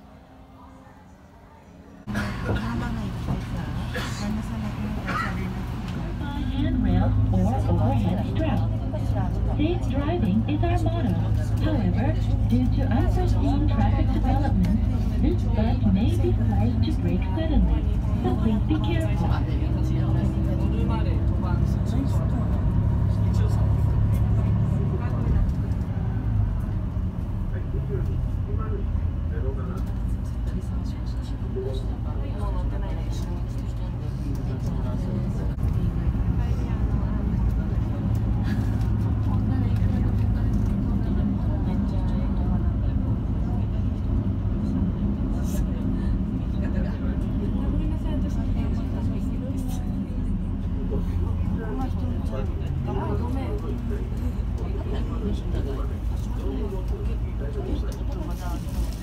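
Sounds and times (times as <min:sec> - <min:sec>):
bus engine droning: 0:00.0 - 0:59.0
faint murmur of voices: 0:00.0 - 0:59.0.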